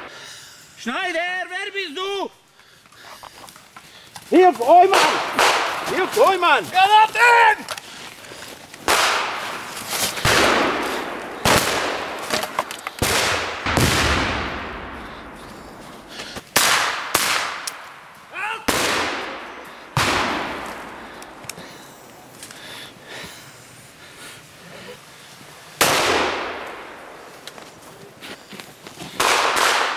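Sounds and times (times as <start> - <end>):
gunfire bangs with echo: 4.9 - 6.1, 8.9 - 9.6, 10.2 - 12.4, 13.0 - 15.8, 18.7 - 21.1, 29.2 - 29.9
person shouting: 6.2 - 7.7, 18.3 - 18.7
pyrotechnic blast: 13.0 - 15.4.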